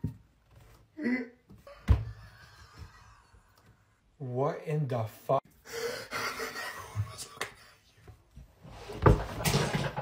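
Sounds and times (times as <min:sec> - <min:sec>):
breathy laughter and gasping: 0:05.6 - 0:07.9.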